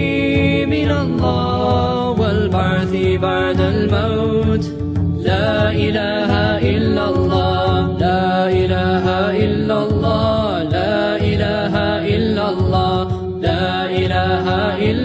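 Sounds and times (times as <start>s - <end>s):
low steady accompaniment: 0.0s - 15.0s
person singing devotional chant: 0.0s - 15.0s.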